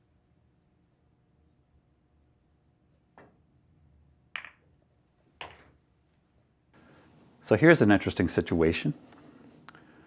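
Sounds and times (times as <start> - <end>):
cue tip tapping ball: 4.3 - 4.7
billiard balls clicking: 4.3 - 5.8.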